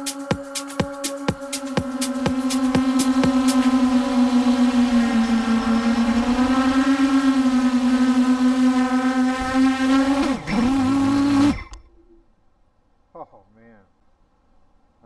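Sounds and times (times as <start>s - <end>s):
drone motors humming: 0.0s - 12.3s.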